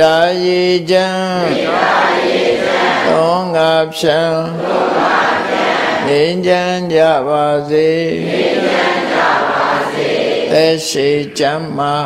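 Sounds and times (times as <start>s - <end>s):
man chanting: 0.0s - 1.7s, 3.0s - 4.6s, 6.0s - 8.3s, 10.5s - 12.0s.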